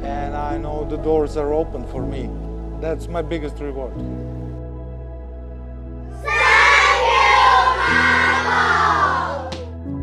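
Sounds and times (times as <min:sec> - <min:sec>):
soft background music: 0:00.0 - 0:10.0
children shouting in unison: 0:06.2 - 0:09.6.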